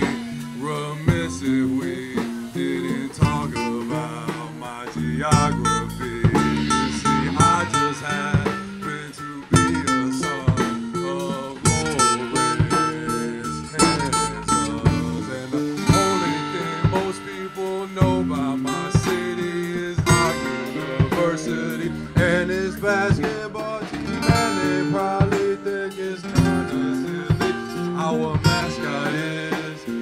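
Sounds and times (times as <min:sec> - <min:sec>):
acoustic guitar: 0:00.0 - 0:30.0
drum kit: 0:00.0 - 0:30.0
second guitar: 0:00.0 - 0:30.0
cymbal hits: 0:05.7 - 0:08.7.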